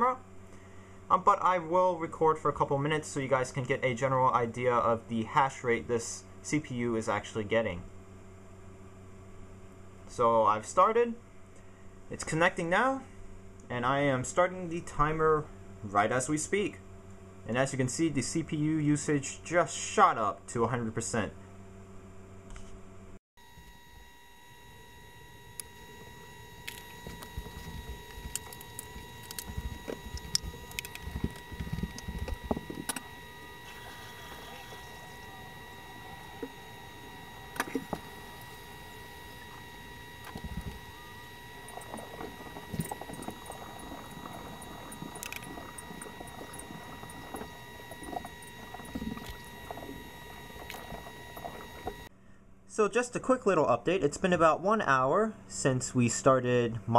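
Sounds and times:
high whine: 0:23.4 - 0:52.1.

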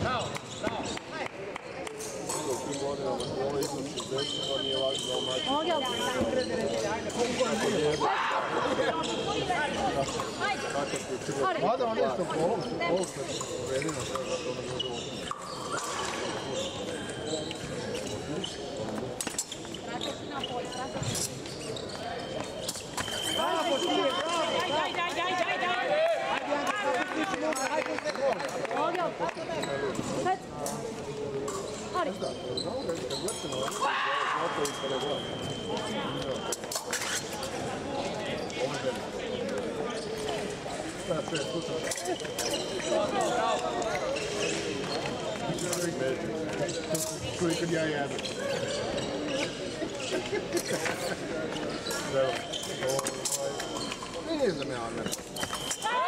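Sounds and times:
shoes squeaking on floor: 0:00.0 - 0:01.2, 0:02.3 - 0:25.6, 0:29.4 - 0:33.8, 0:34.4 - 0:56.0
voices in a large hall: 0:00.0 - 0:56.0.

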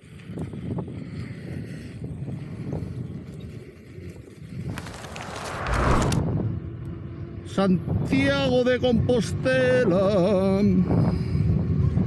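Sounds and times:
wind rumble on microphone: 0:00.0 - 0:12.0
tyre rolling over gravel: 0:04.7 - 0:06.1
whooshing rush: 0:04.7 - 0:06.8.

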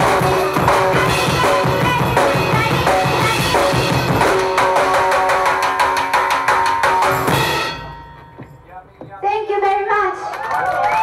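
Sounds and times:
fast drum hits: 0:00.0 - 0:09.2.

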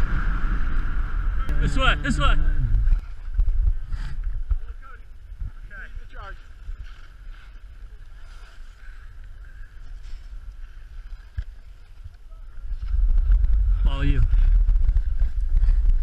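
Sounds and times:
wind rushing over microphone: 0:00.0 - 0:16.0.

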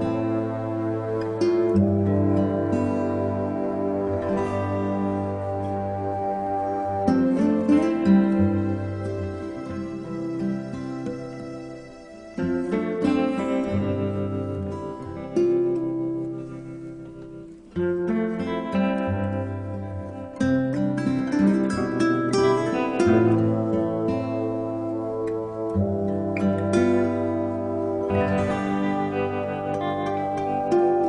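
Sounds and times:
gentle plucked string music: 0:00.0 - 0:31.0.

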